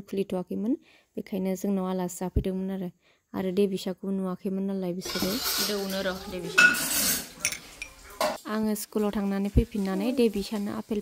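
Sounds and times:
spoon scraping in glass cup: 5.0s - 8.0s.

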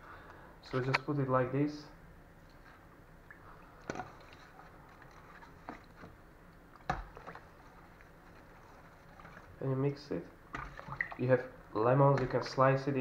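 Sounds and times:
faint stirring in water: 2.4s - 13.0s.

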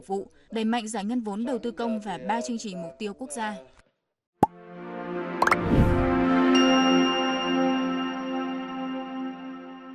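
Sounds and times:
whoosh: 5.5s - 6.2s.

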